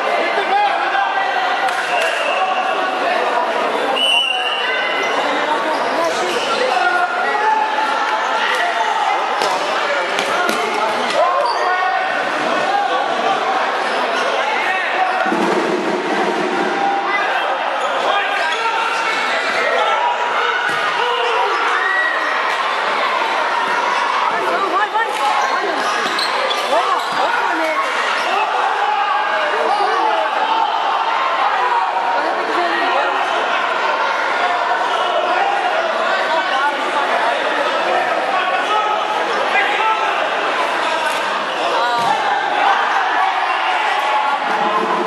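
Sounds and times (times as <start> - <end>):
crowd chatter and shouts: 0.0 - 45.0.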